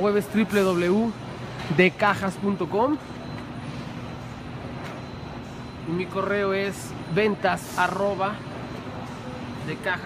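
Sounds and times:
printing machine humming and whirring: 0:00.0 - 0:10.0.

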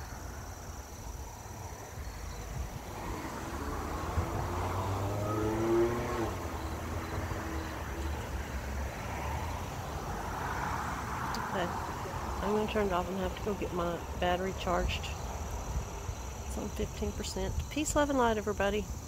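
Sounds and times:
vehicle engine passing by: 0:02.0 - 0:16.6.

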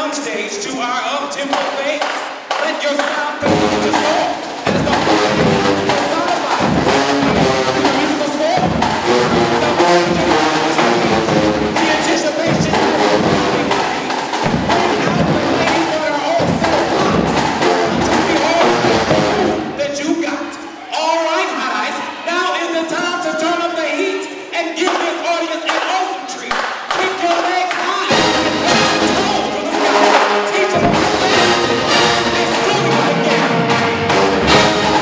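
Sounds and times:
drumline beat: 0:01.4 - 0:19.8, 0:26.6 - 0:35.0
marching band brass: 0:01.5 - 0:19.8, 0:27.7 - 0:35.0.

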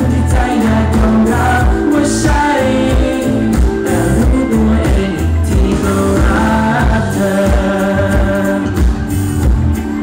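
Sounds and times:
men singing: 0:00.0 - 0:09.0
pop song over sound system: 0:00.0 - 0:10.0.

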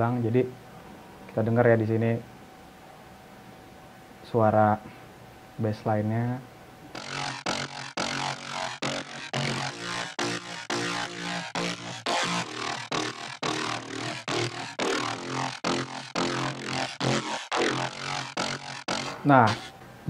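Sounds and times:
synth bassline: 0:06.9 - 0:19.7
electronic dance music: 0:07.0 - 0:19.7.

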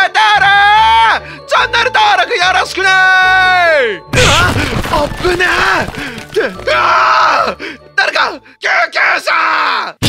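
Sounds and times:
man yelling in horror: 0:00.0 - 0:01.2, 0:02.8 - 0:10.0
background music: 0:00.0 - 0:10.0.

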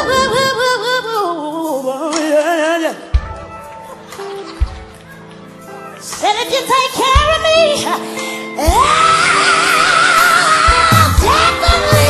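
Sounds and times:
live band accompaniment: 0:00.0 - 0:12.0.

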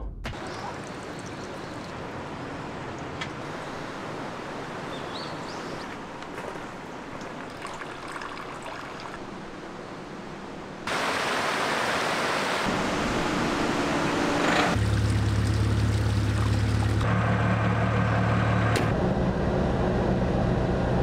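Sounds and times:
water rushing over rocks: 0:00.3 - 0:13.4.

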